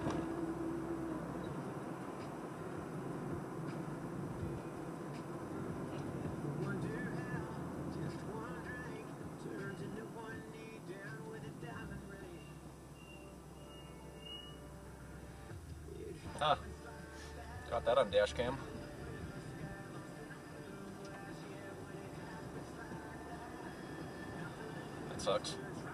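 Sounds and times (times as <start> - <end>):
car road rumble: 0.0 - 25.9
radio voice and music: 16.1 - 16.7, 17.6 - 18.8, 24.9 - 25.8.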